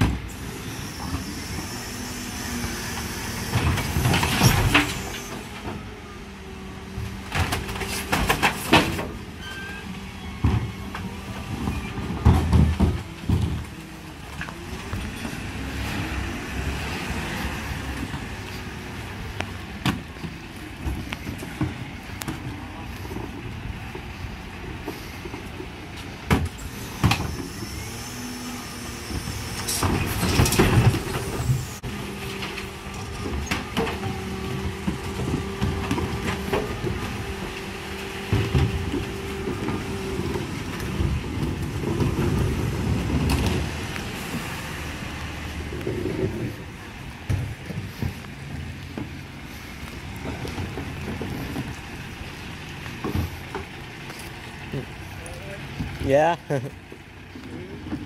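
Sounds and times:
hydraulic lifters whining: 0.0s - 56.1s
bin lorry engine humming: 0.0s - 58.0s
wheelie bins rolling: 0.0s - 58.0s.

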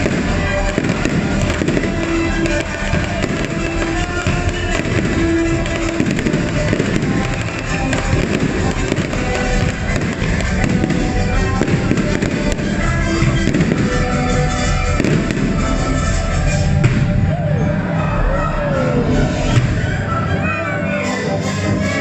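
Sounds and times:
fireworks popping and crackling: 0.0s - 17.3s
loud show music: 0.0s - 22.0s.

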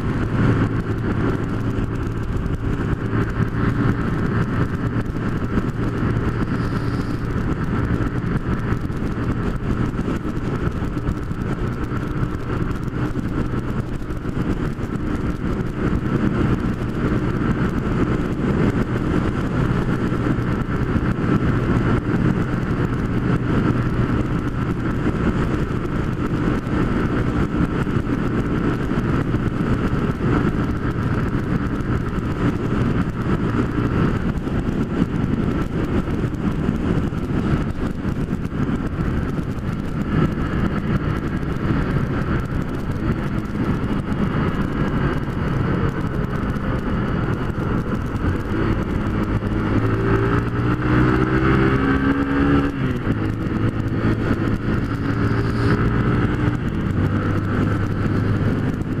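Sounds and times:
motorcycle engine running: 0.0s - 59.0s
wind rush over microphone: 0.0s - 59.0s.

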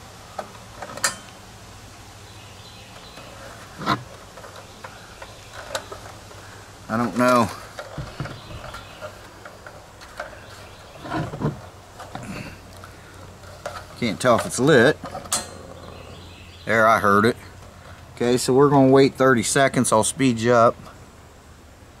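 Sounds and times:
handling plastic heater body: 0.4s - 1.4s, 2.9s - 15.8s.

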